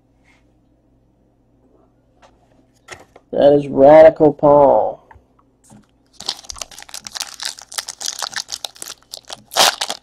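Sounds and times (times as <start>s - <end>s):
cards and plastic crinkling: 6.1s - 10.0s.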